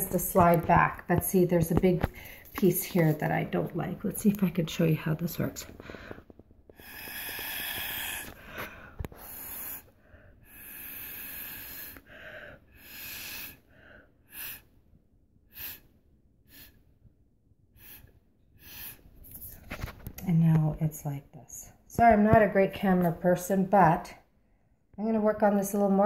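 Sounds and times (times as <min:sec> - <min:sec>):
breath blown through a straw: 0:06.8 - 0:13.7, 0:14.3 - 0:14.7, 0:15.5 - 0:15.9, 0:16.5 - 0:16.8, 0:17.8 - 0:19.1.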